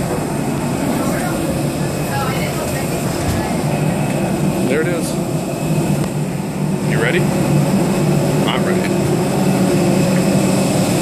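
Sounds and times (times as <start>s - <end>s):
airliner machinery drone: 0.0s - 11.0s.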